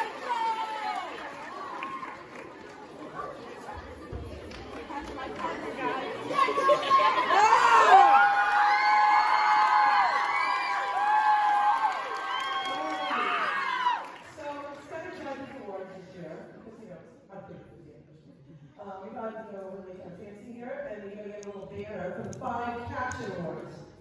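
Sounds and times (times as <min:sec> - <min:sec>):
audience chatter: 0:00.0 - 0:08.3
crowd cheering and screaming: 0:06.5 - 0:14.2.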